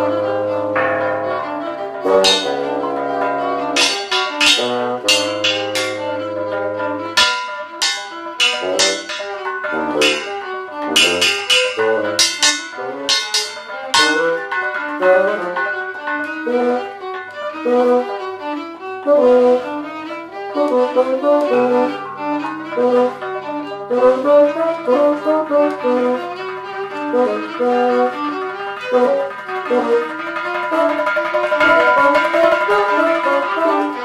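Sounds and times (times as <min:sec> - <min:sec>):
low held note: 0:00.0 - 0:18.4
percussion strikes ringing: 0:00.0 - 0:25.8, 0:26.5 - 0:34.0
bowed and reed notes: 0:00.0 - 0:34.0.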